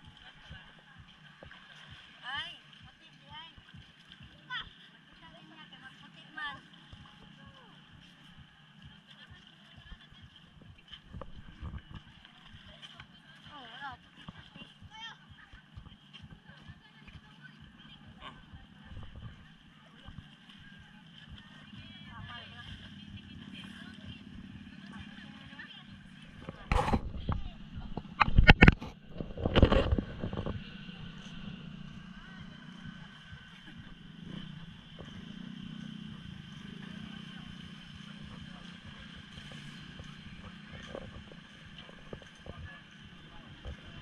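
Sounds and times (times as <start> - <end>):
low background hum: 0.0 - 44.0
indistinct voices: 4.4 - 44.0.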